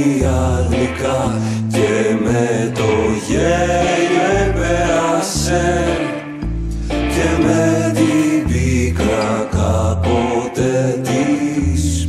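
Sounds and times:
instrumental rock music: 0:00.0 - 0:12.0.

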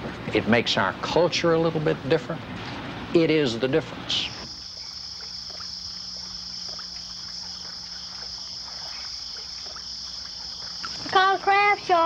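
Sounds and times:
insect chorus: 0:03.2 - 0:12.0
small water splashes: 0:03.9 - 0:12.0
faint ticks: 0:04.5 - 0:11.2.

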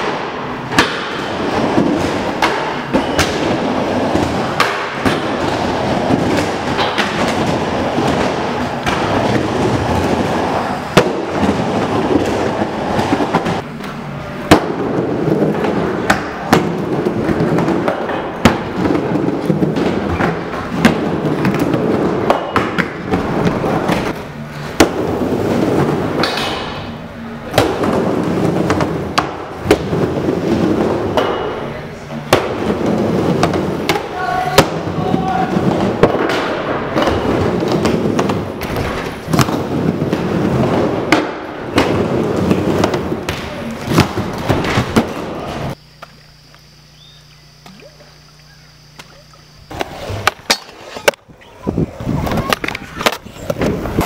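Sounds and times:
skateboard clacks and thuds: 0:00.0 - 0:13.6, 0:14.5 - 0:26.9, 0:27.5 - 0:45.8, 0:49.7 - 0:54.0
skateboard wheels rolling on wood: 0:00.0 - 0:54.0.

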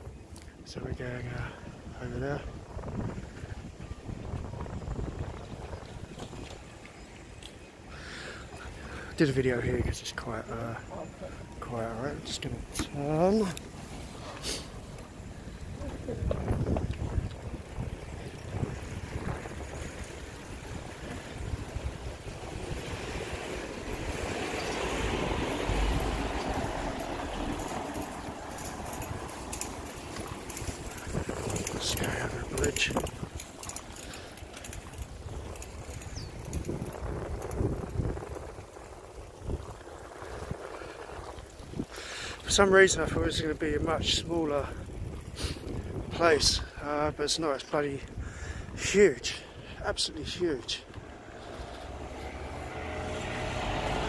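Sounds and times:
wind rumbling on microphone: 0:00.0 - 0:07.9, 0:11.4 - 0:54.0
bike rolling over road: 0:12.7 - 0:42.6, 0:50.9 - 0:54.0.

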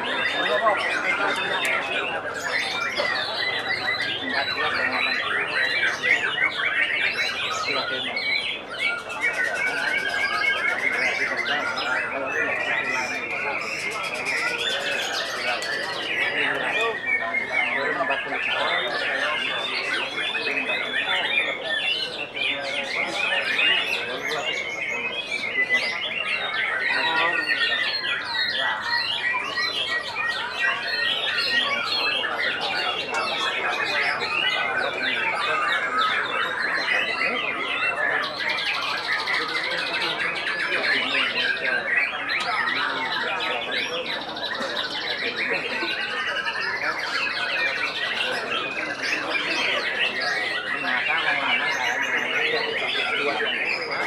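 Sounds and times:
birds singing in chorus: 0:00.0 - 0:54.0.

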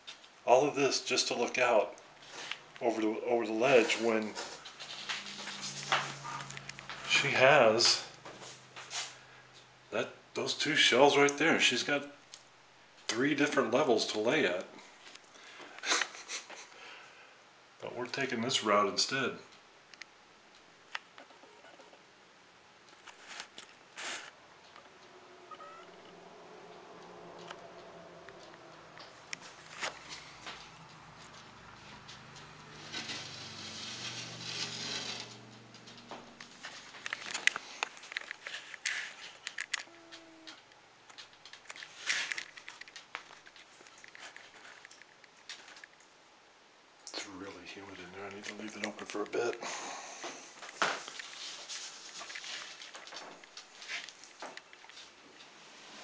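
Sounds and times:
lizard rustling: 0:00.0 - 0:09.3, 0:22.9 - 0:46.1, 0:50.4 - 0:55.9
lizard claws scratching on wood: 0:31.2 - 0:37.7.

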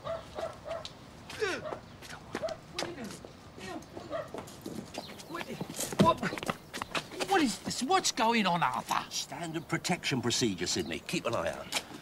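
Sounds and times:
knocks and scuffs: 0:03.9 - 0:07.8.

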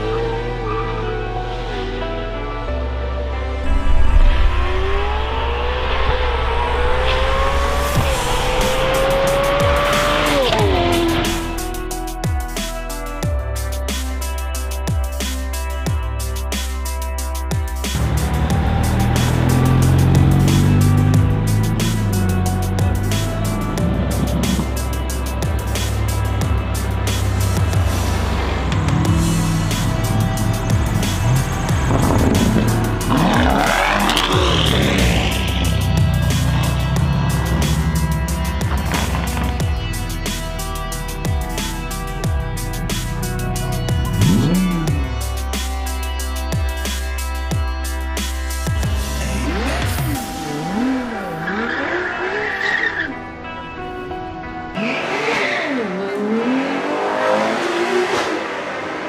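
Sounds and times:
background music with bass line: 0:00.0 - 0:59.0
car engine revving: 0:03.6 - 0:12.2, 0:17.8 - 0:47.4, 0:48.2 - 0:59.0
sports car engine revving past: 0:54.7 - 0:59.0.

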